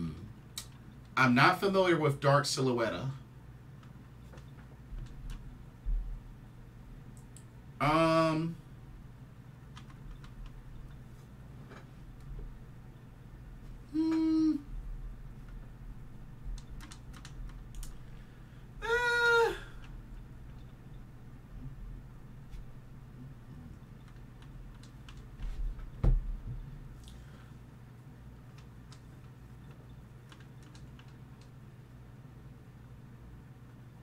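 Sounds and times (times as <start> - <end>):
man saying ehh: 0.0 - 0.3, 7.8 - 8.6, 13.9 - 14.7, 18.8 - 19.8
steady low hum: 0.0 - 34.0.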